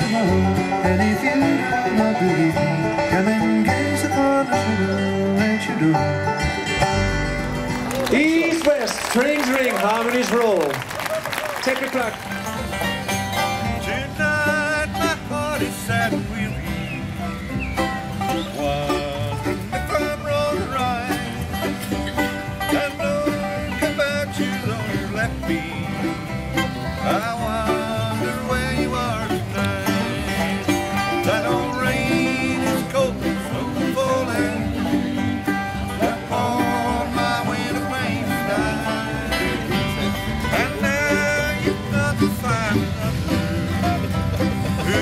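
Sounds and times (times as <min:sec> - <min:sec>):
acoustic guitar: 0:00.0 - 0:45.0
picked banjo: 0:00.0 - 0:45.0.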